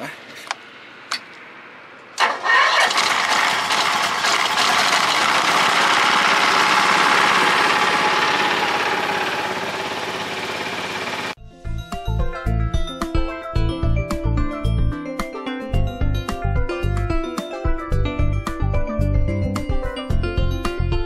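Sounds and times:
engine running steadily: 0:00.0 - 0:11.4.

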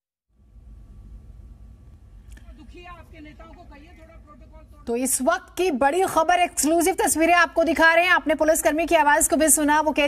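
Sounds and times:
low steady rumble: 0:00.3 - 0:10.0.

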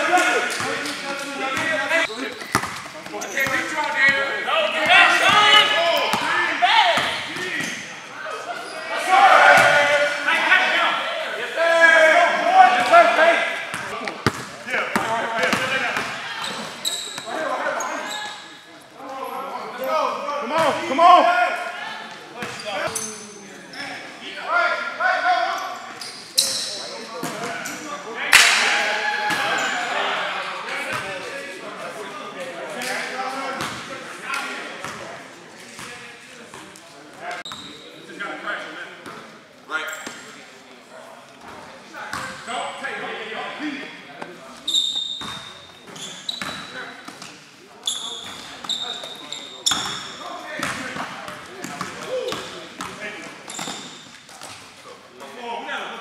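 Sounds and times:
basketball bouncing: 0:02.3 - 0:03.6, 0:13.7 - 0:16.2
players shouting: 0:03.1 - 0:14.0, 0:19.7 - 0:22.8, 0:28.2 - 0:30.9.

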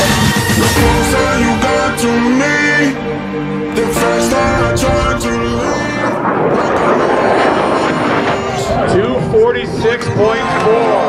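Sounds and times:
wind noise: 0:04.0 - 0:11.0
spectators shouting and cheering: 0:06.2 - 0:11.0.

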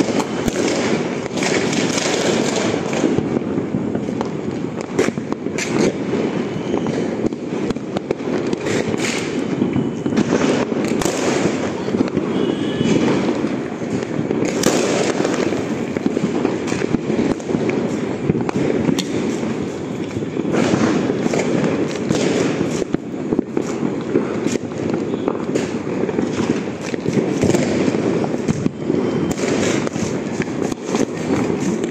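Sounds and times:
firecrackers popping and crackling: 0:00.0 - 0:31.9
sharp crack: 0:04.7 - 0:06.0, 0:07.2 - 0:09.5, 0:10.2 - 0:28.7.

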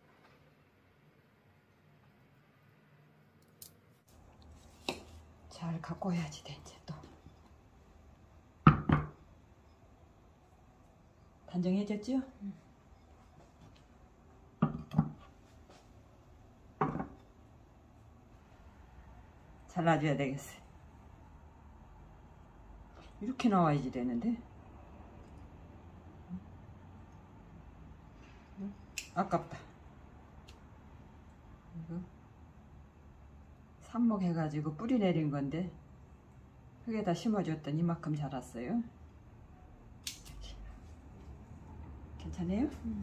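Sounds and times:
plant pot knocking on wooden table: 0:08.7 - 0:09.2, 0:14.6 - 0:15.2, 0:16.8 - 0:17.2.

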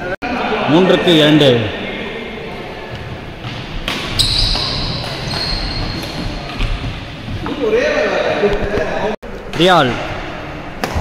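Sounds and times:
shoes squeaking on wooden floor: 0:02.8 - 0:07.8
racket striking shuttlecock: 0:03.4 - 0:06.9.

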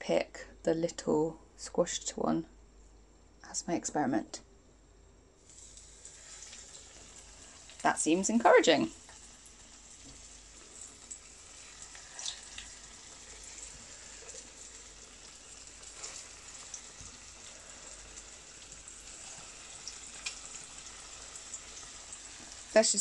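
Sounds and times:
food frying in hot oil: 0:05.4 - 0:23.0
short crackles of oil: 0:11.9 - 0:12.8.

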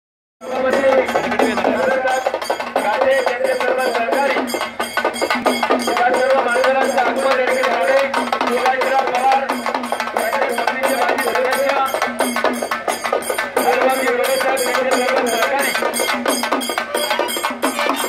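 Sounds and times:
drums beaten fast: 0:00.4 - 0:18.0.

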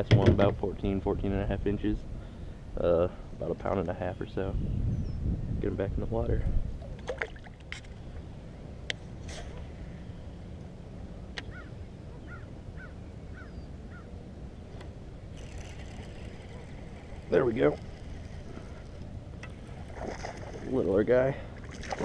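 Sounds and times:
wind rumbling on microphone: 0:00.0 - 0:22.0
bird chirping: 0:11.4 - 0:14.8
fishing reel whirring: 0:15.2 - 0:20.6.

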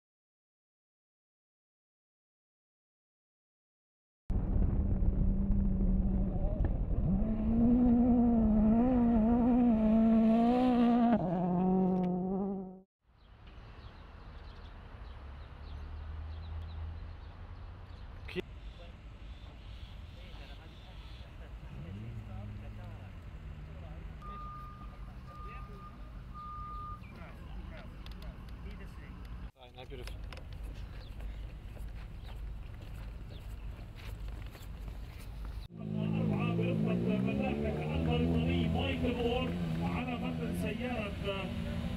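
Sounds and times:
low engine hum: 0:04.3 - 0:12.8
race car engine revving: 0:05.2 - 0:12.8, 0:21.6 - 0:25.4, 0:35.8 - 0:41.9
reversing alarm beeping: 0:24.2 - 0:27.1.

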